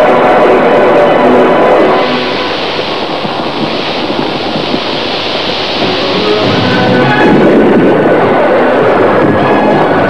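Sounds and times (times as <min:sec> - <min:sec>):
steady wind-like rushing noise: 0:00.0 - 0:10.0.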